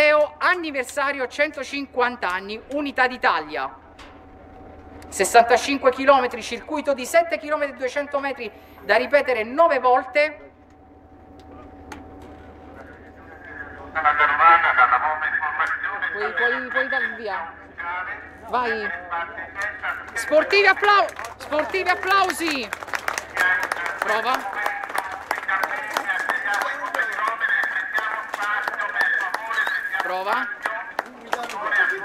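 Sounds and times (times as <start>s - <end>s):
crowd chatter: 11.3s - 32.0s.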